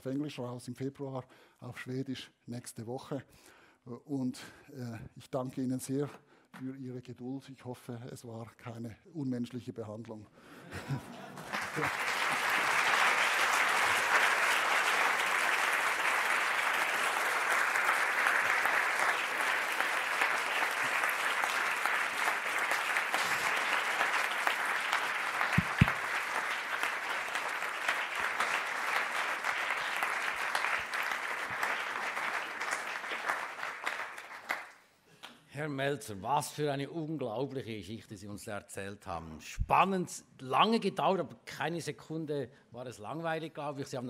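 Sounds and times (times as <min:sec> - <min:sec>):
audience applauding: 0:11.1 - 0:34.8.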